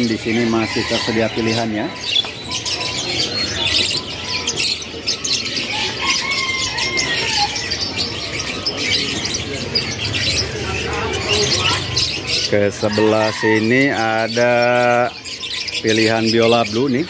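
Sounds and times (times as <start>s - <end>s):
caged birds chirping: 0.0s - 17.0s.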